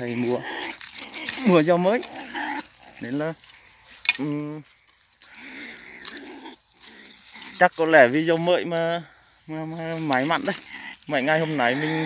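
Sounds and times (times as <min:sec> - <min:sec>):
animal growling: 0:00.0 - 0:03.2, 0:05.3 - 0:08.6, 0:09.9 - 0:12.0.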